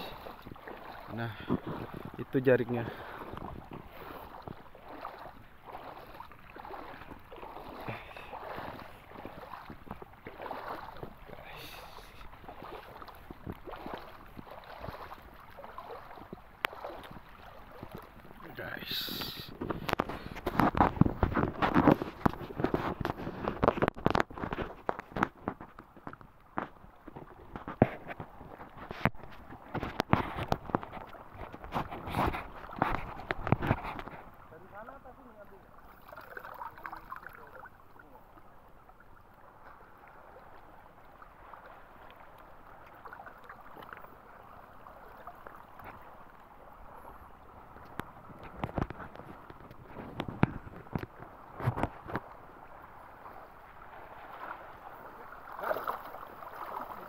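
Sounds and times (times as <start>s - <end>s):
seawater splashing from wading: 0.0s - 25.5s, 26.4s - 57.0s.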